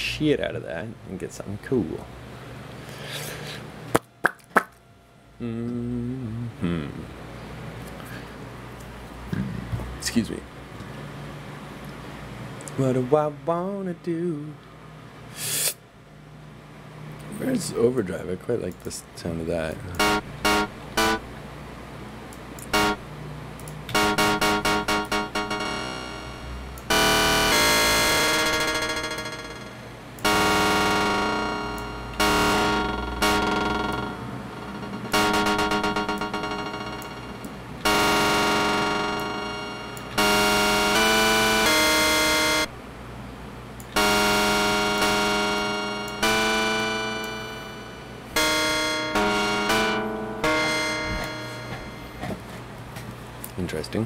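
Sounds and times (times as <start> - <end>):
distorted sampled notes: 19.9 - 21.4, 22.6 - 23.1, 23.9 - 42.7, 44.0 - 52.4.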